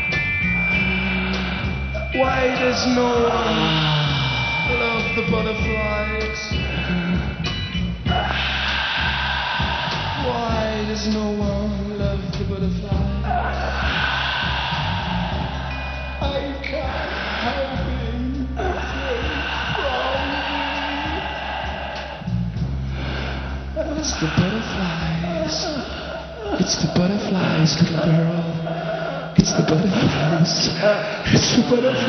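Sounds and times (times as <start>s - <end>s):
drums: 0.0s - 28.7s
bass guitar: 0.0s - 31.8s.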